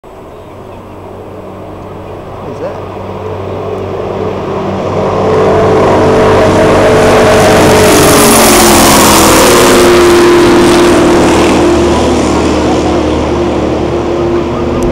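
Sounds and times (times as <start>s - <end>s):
race boat engine drone passing: 0.0s - 14.9s.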